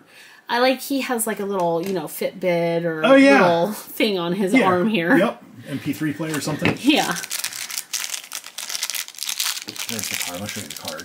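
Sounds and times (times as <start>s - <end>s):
plastic bag crinkling: 6.2s - 11.0s.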